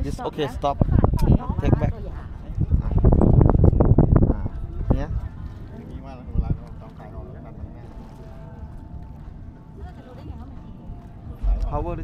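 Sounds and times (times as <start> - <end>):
wind rumble: 0.0 - 12.0
boat noise: 0.6 - 12.0.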